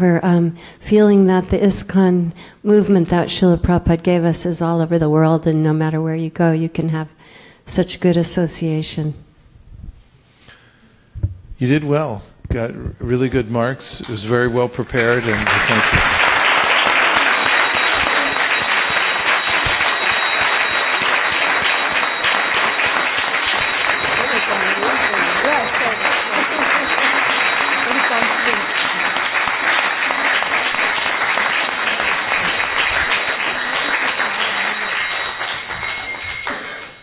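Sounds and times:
audience applauding: 14.8s - 37.0s.

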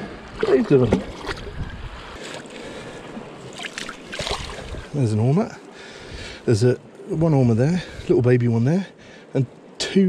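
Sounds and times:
wind on microphone: 0.0s - 2.2s, 4.0s - 5.0s
seawater sloshing and trickling: 0.0s - 5.0s.

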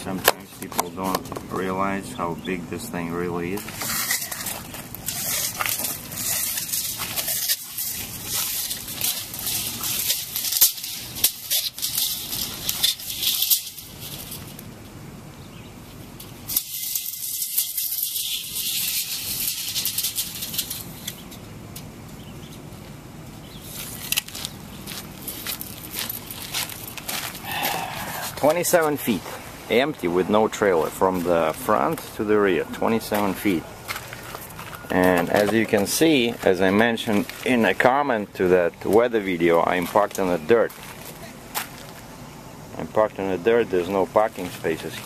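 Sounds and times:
footsteps crunching on gravel: 2.9s - 14.5s, 22.8s - 42.2s.

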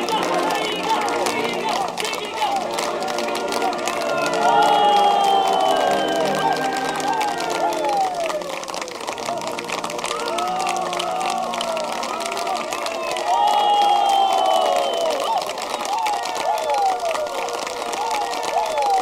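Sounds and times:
guests applauding and cheering: 0.0s - 19.0s
music playing: 0.0s - 19.0s.

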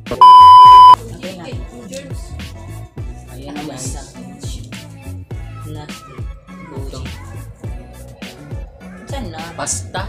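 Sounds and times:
high-pitched test-tone beep: 0.1s - 1.0s.

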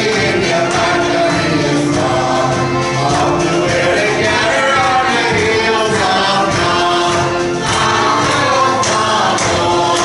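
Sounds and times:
congregation singing a hymn: 0.0s - 10.0s.

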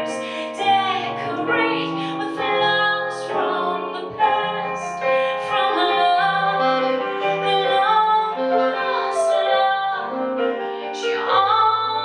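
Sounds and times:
keyboard playing piano: 0.0s - 12.0s
woman singing slow song: 0.0s - 12.0s.

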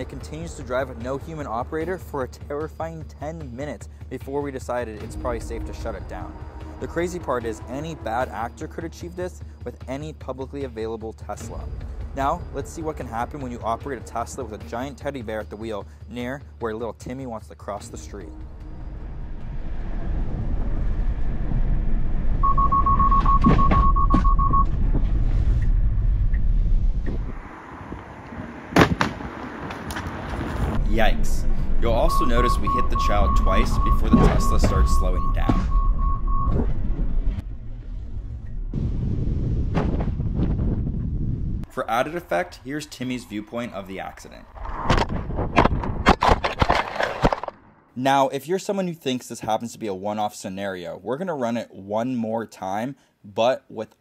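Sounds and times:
road and tyre rumble: 18.1s - 47.8s
rapid high beeps: 22.4s - 24.7s, 31.9s - 36.6s.

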